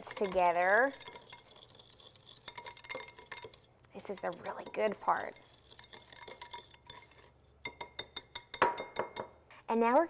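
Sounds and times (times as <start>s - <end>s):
whisk scraping in bowl: 0.0s - 8.5s
whisk wires clinking on glass: 0.0s - 9.4s.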